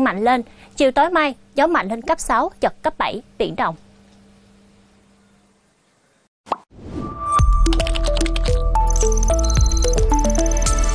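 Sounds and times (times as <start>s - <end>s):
electronic jingle music: 7.0s - 10.9s.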